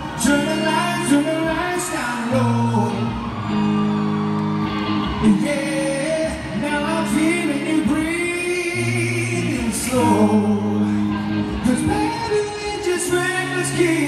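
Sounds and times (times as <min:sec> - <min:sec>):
man singing: 0:00.0 - 0:03.2, 0:05.1 - 0:14.0
electric guitar: 0:00.0 - 0:14.0.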